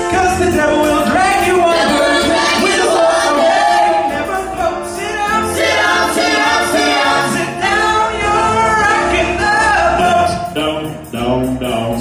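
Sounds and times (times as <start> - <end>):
vocal group singing a cappella: 0.0 - 12.0.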